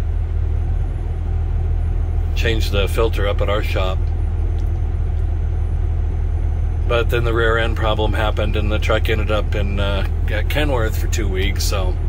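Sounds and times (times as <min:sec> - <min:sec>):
diesel truck engine rumble: 0:00.0 - 0:12.0.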